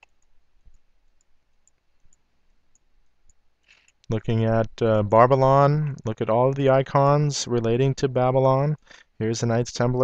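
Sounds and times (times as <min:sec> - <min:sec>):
computer mouse click: 0:00.0 - 0:04.1.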